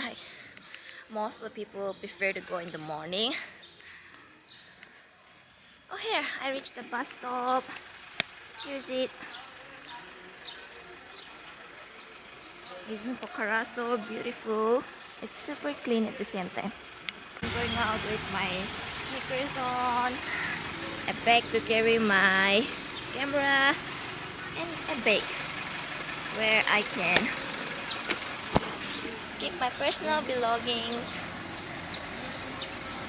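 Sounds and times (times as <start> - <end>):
insects chirring: 0.0 - 33.0
outdoor background hiss: 0.0 - 33.0.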